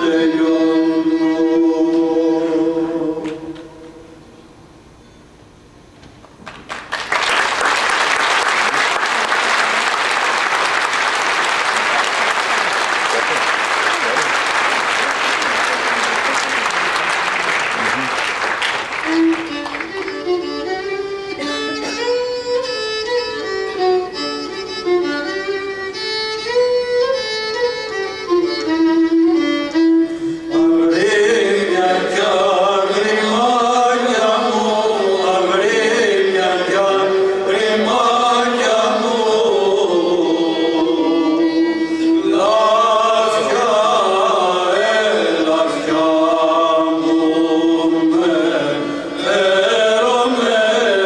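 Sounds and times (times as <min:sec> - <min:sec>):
slow melody with long notes: 0:00.0 - 0:04.4, 0:19.0 - 0:51.0
audience applause: 0:06.4 - 0:20.3.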